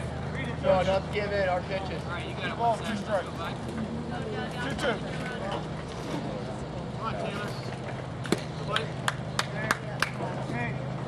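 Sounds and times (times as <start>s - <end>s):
hand claps: 8.2s - 10.2s.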